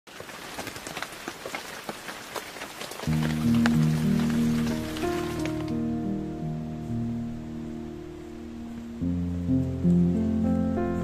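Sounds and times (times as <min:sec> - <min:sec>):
rain pattering: 0:00.1 - 0:11.0
background music chords: 0:03.1 - 0:11.0.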